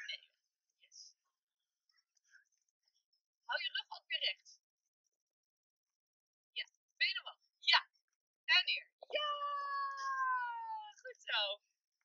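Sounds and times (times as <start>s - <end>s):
person's falling high-pitched vocal: 9.2s - 11.0s.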